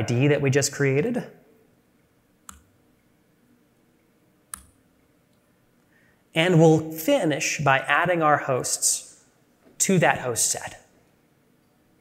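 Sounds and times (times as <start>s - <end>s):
faint background hiss: 0.0s - 12.0s
computer mouse clicks: 2.4s - 2.7s, 4.5s - 5.4s.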